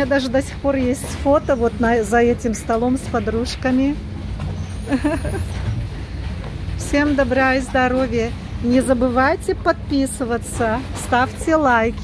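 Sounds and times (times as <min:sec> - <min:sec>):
motorboat engines rumbling: 0:00.0 - 0:12.0.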